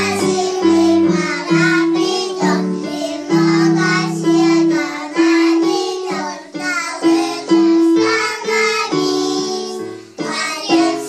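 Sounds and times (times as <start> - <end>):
children singing together: 0.0 - 11.0
instrumental accompaniment: 0.0 - 11.0.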